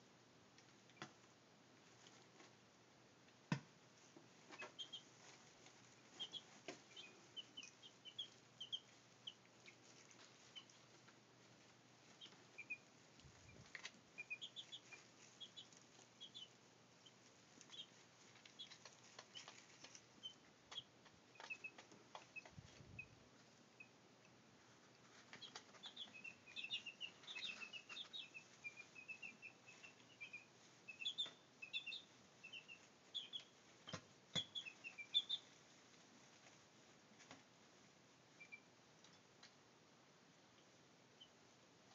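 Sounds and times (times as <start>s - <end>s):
chicks peeping: 4.0s - 37.5s, 38.1s - 39.6s, 40.5s - 41.9s.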